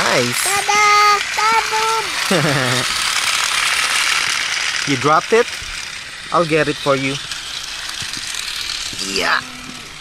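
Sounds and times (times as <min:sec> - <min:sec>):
toy train motor rattling: 0:00.0 - 0:10.0.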